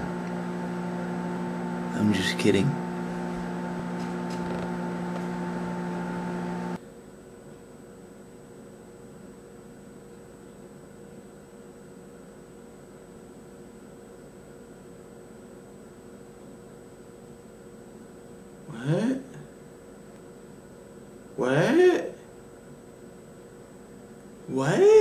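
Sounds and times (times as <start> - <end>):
faint electronic hum: 0.0 - 25.0.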